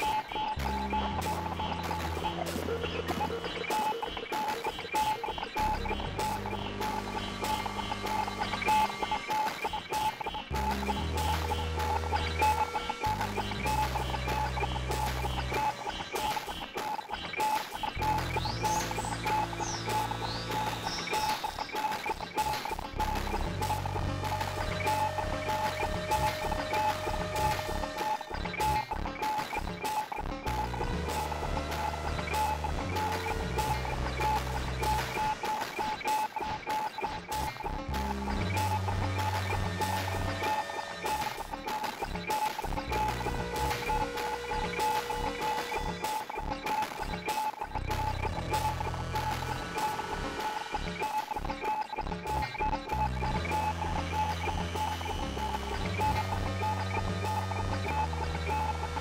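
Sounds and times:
electronic synthesizer music: 0.0s - 59.0s.

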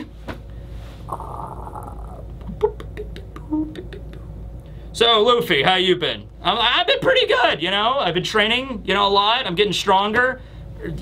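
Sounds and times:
mouth clicks: 1.1s - 4.3s.

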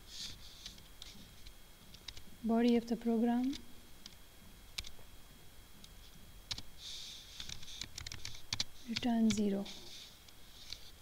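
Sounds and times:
typing on keyboard: 7.4s - 9.4s.

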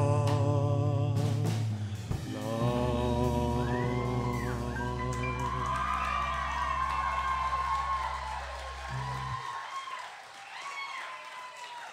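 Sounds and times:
live band final chord: 1.2s - 9.4s
audience applauding and cheering: 2.9s - 11.9s.

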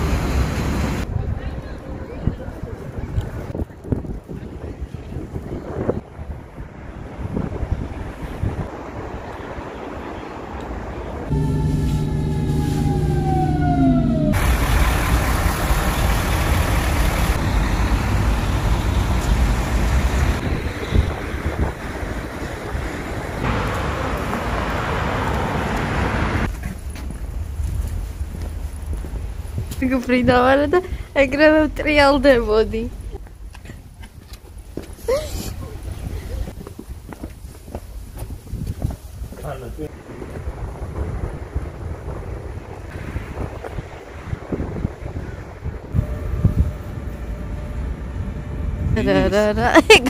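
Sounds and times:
traffic noise: 0.0s - 50.0s
loud steady rushing noise: 6.4s - 26.5s
falling pitched tone: 11.3s - 16.4s.

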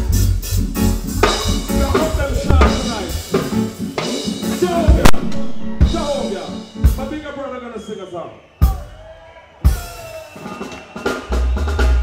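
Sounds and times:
live reggae band playing: 0.0s - 7.8s, 8.4s - 12.0s
sharp drum hits: 2.4s - 3.2s, 5.0s - 6.2s.

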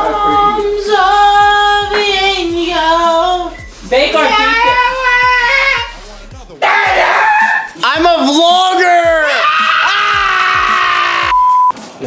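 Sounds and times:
music with deep kick drum: 0.0s - 11.8s
men screaming high-pitched yells: 6.6s - 11.4s.

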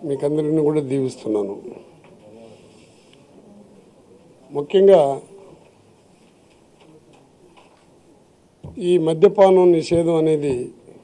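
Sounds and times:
man speaking into microphone: 0.0s - 1.9s, 4.5s - 5.5s, 8.7s - 10.9s.

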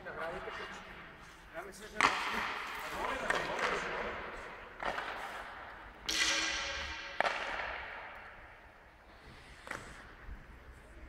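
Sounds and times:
hockey stick striking puck: 1.8s - 8.8s, 9.5s - 10.2s.

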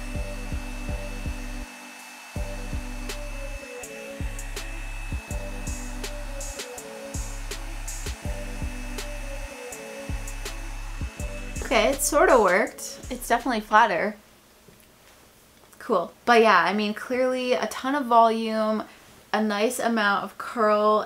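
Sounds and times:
background music with steady beat: 0.0s - 13.7s
hot-air dryer brush blowing: 0.0s - 13.8s.

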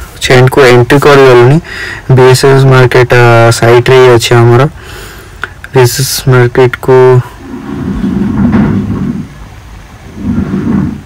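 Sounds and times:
wind rush: 7.2s - 11.0s.

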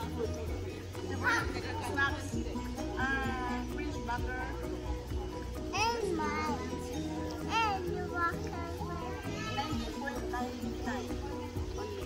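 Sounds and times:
background music with held notes: 0.0s - 12.0s
children talking and calling out: 0.0s - 12.0s.

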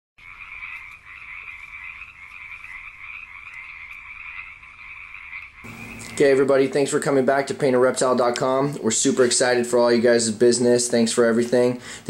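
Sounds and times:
chorus of frogs calling: 0.2s - 7.2s.

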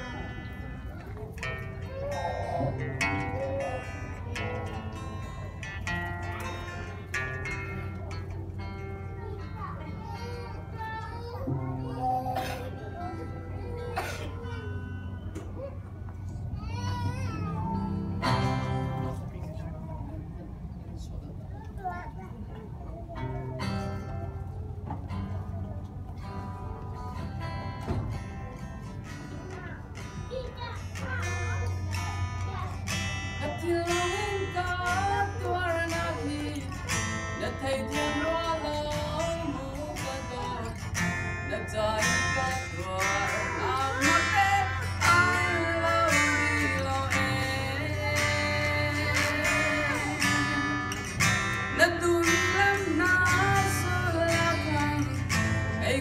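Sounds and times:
guitar plucked melody: 0.0s - 20.7s, 22.6s - 56.0s
voices chattering: 0.0s - 56.0s.

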